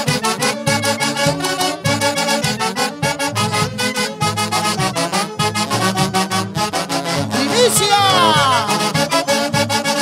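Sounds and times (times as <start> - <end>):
saxophones playing melody: 0.0 - 10.0.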